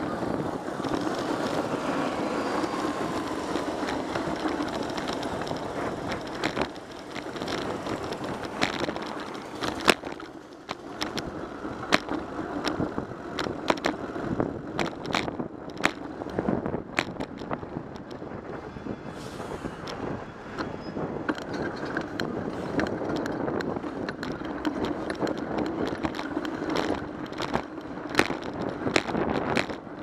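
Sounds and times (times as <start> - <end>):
bike and mount rattling: 0.0 - 18.7, 19.7 - 30.0
road and wind noise: 0.0 - 30.0.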